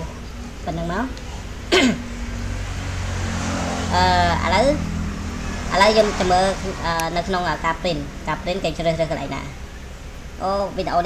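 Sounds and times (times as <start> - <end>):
person speaking: 0.0 - 1.4, 3.9 - 4.8, 5.7 - 9.6, 10.4 - 11.0
low background hum: 0.0 - 11.0.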